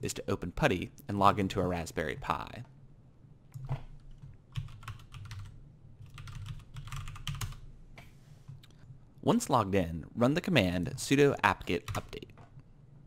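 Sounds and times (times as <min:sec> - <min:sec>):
typing on computer keyboard: 0:04.1 - 0:07.6.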